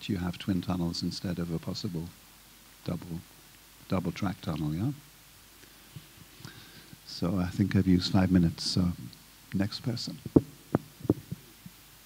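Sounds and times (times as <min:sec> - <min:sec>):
microphone handling thumps: 0:10.1 - 0:11.8.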